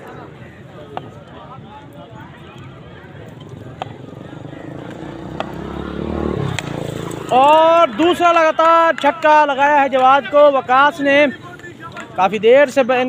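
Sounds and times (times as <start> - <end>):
passing vehicle engine rumble: 0.0 - 12.2
distant voices: 0.0 - 13.0
cricket bat hitting ball: 4.8 - 5.8.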